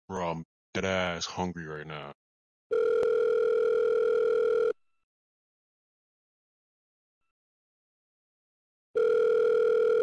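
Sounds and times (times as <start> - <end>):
telephone ringback tone: 2.7 - 4.8, 9.0 - 10.0.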